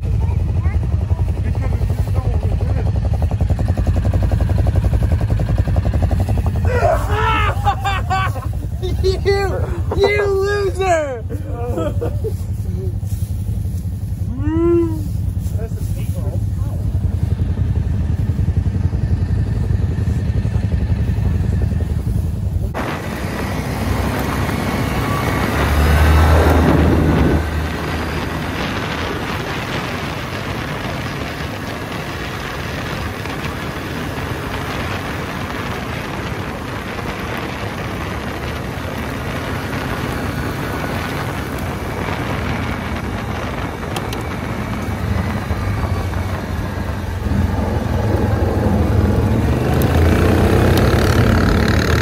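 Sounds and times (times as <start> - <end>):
engine idling: 0.0 - 52.0
tyres on dirt track: 0.0 - 52.0
wind rushing: 1.3 - 52.0.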